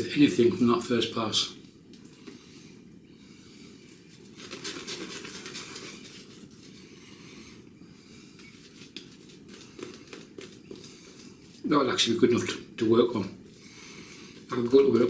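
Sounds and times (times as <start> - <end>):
shaving brush scratching on stubble: 4.1 - 6.9, 8.0 - 11.7.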